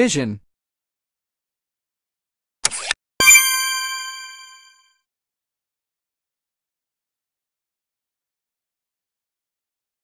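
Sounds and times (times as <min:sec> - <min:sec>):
bell-like success chime: 0:03.2 - 0:04.8.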